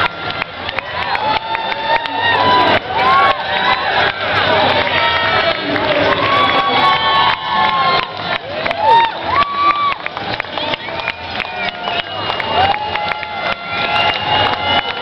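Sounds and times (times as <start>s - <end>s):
babble of voices: 0.0s - 15.0s
crowd cheering: 0.0s - 15.0s
high whoops: 0.8s - 3.9s, 6.1s - 15.0s.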